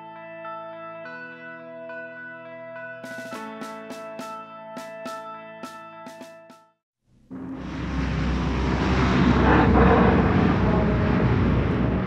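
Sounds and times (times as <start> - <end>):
propeller aircraft engine drone: 7.3 - 12.0.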